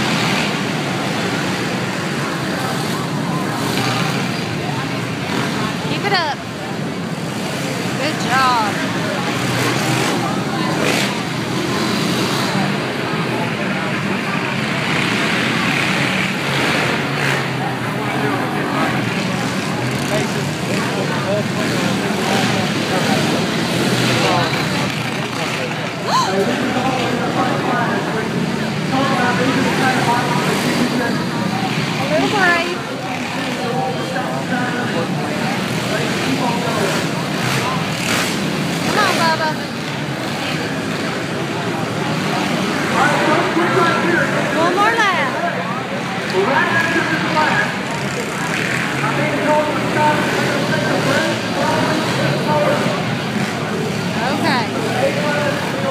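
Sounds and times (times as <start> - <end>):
crowd voices: 0.0 - 55.9
dirt bike engines revving: 0.0 - 55.9.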